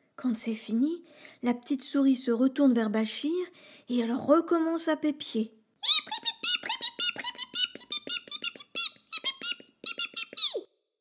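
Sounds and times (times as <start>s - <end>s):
squeaky mouse chirps: 5.8s - 10.7s.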